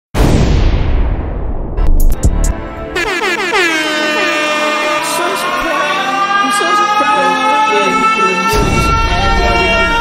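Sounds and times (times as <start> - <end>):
low booming hit: 0.2 - 3.0, 8.5 - 9.9
air horn sound effect: 2.5 - 10.0.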